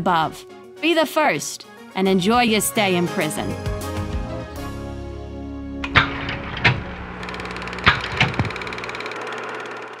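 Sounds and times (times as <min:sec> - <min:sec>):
low hum: 0:05.8 - 0:10.0.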